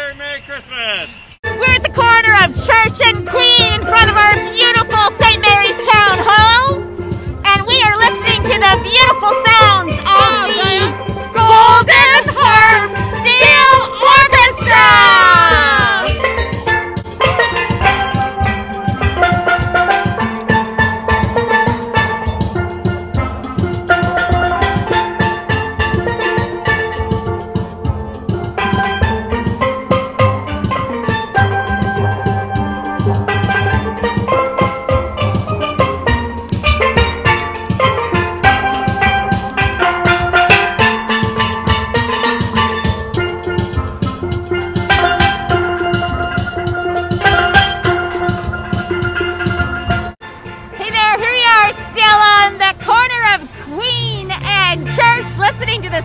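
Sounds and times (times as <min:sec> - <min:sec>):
steel band playing: 0:01.4 - 0:56.0.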